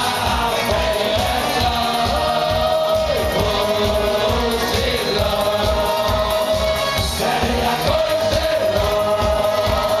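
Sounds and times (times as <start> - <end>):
rhythmic backing beat: 0.0 - 10.0.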